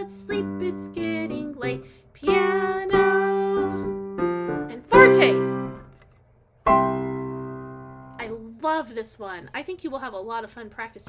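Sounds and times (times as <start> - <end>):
digital piano chords: 0.0 - 5.9, 6.7 - 8.2
person talking: 8.2 - 11.0.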